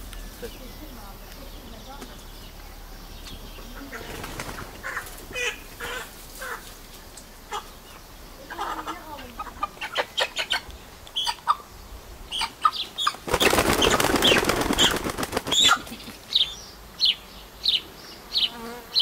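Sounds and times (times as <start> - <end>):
chickens clucking: 0.1 - 17.2
wings flapping: 3.8 - 7.0, 13.0 - 16.4.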